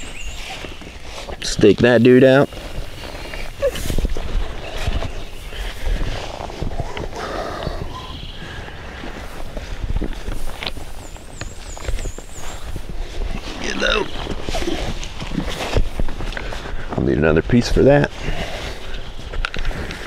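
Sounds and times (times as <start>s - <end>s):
bird calling: 0.0s - 1.2s, 2.4s - 6.1s, 6.8s - 9.2s, 10.8s - 15.0s
rustling: 0.0s - 16.9s
footsteps on leaf litter: 8.4s - 17.2s.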